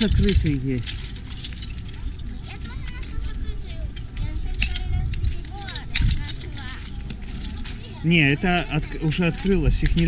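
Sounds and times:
oyster shells clinking: 0:00.0 - 0:10.0.

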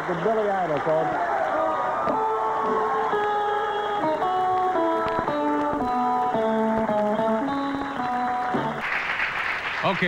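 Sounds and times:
guitar playing held notes: 0:02.1 - 0:08.8
house band music: 0:02.2 - 0:08.8.

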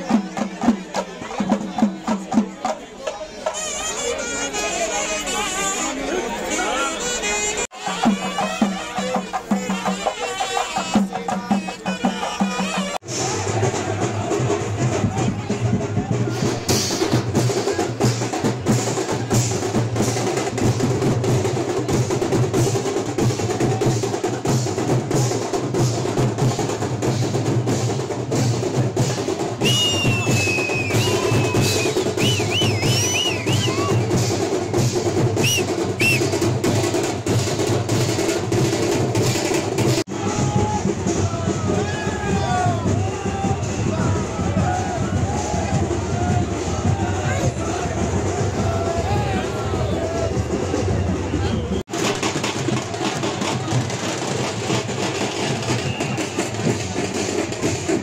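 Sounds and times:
drums beating fast rhythm: 0:00.0 - 0:05.9, 0:06.5 - 0:58.0
voices: 0:00.0 - 0:20.1, 0:39.4 - 0:51.8
music: 0:00.0 - 0:58.0.

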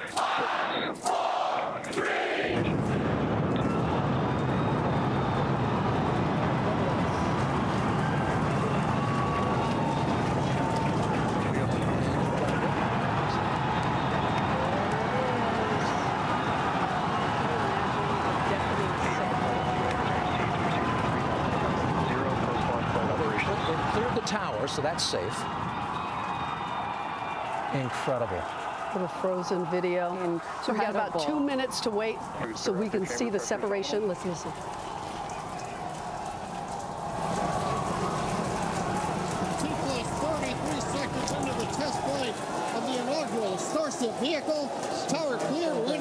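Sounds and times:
crowd cheering: 0:00.0 - 0:46.0
rocket engines rumbling: 0:02.6 - 0:25.0, 0:30.4 - 0:46.0.

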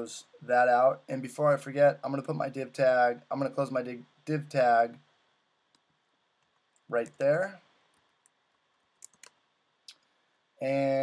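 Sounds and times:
man speaking: 0:00.0 - 0:05.1, 0:06.9 - 0:07.7, 0:10.6 - 0:11.0
computer keyboard keystrokes: 0:09.0 - 0:09.4.

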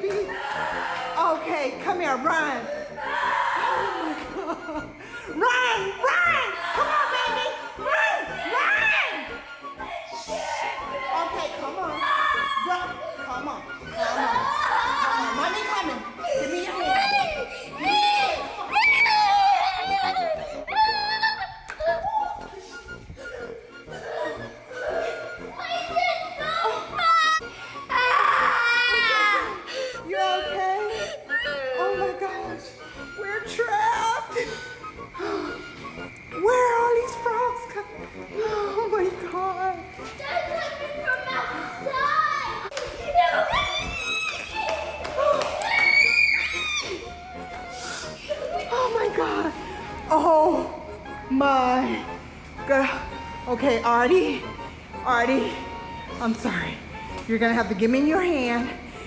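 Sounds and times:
woman shrieking and wailing: 0:00.0 - 0:01.4, 0:02.4 - 0:04.8, 0:05.4 - 0:32.6, 0:43.2 - 0:49.5
young child squealing: 0:43.4 - 0:47.1.

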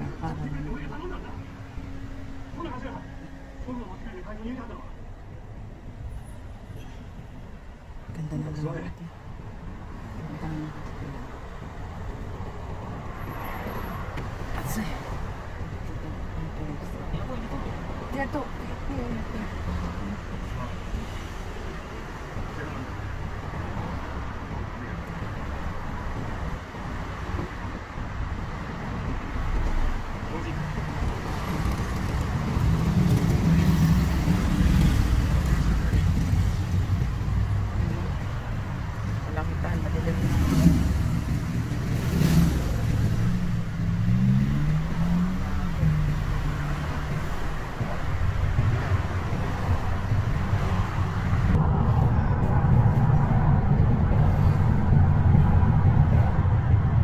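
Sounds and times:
car engine and tyre rumble: 0:00.0 - 0:57.0.

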